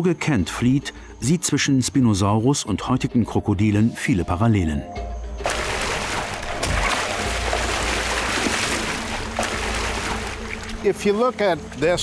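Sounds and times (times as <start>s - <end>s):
water splashing and churning: 5.4s - 12.0s.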